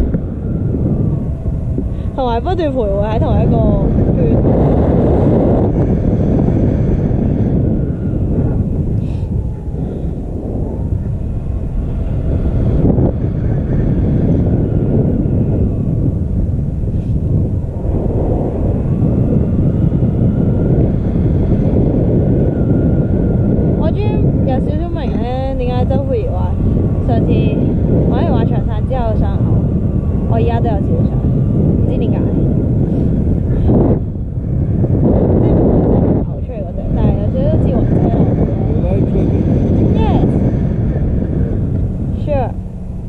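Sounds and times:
wind buffeting microphone: 0.0 - 43.0.

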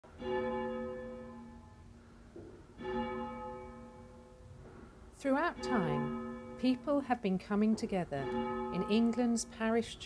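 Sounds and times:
church bell tolling: 0.1 - 2.0, 2.7 - 4.6, 5.3 - 10.0.

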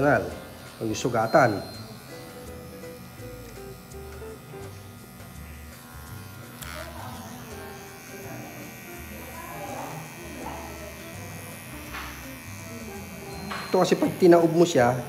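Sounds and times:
electric hair clipper buzzing: 0.0 - 15.0.

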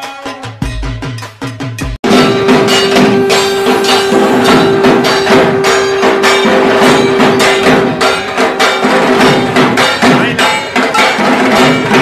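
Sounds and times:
steady held tone: 2.0 - 10.8
deep drumming: 2.0 - 12.0
struck metal ringing: 2.0 - 12.0.

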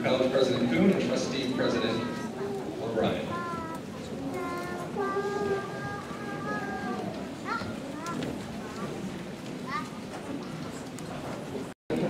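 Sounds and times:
high voices holding long notes: 1.8 - 8.3.

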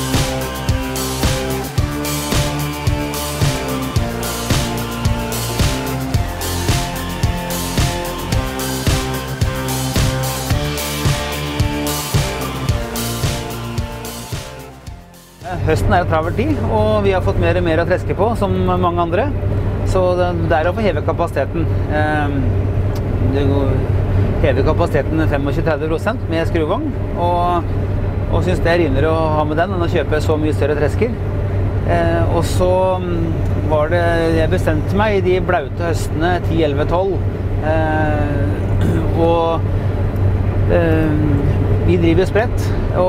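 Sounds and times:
combine harvester engine drone: 0.0 - 43.0
man speaking: 15.4 - 19.2, 31.9 - 39.6.

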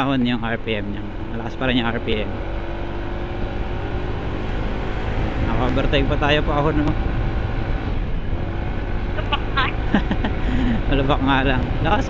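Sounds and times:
scooter engine pulling uphill: 0.0 - 12.0
wind and road noise: 0.0 - 12.0
person speaking: 9.2 - 9.8.

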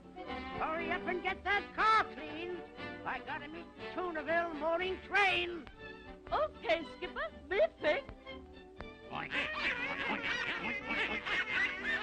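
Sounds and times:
cartoon music: 9.1 - 12.0.

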